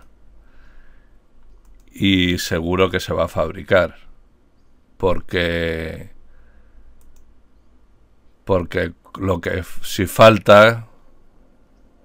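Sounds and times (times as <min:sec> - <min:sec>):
computer mouse clicks: 0:01.4 - 0:02.0, 0:07.0 - 0:07.4.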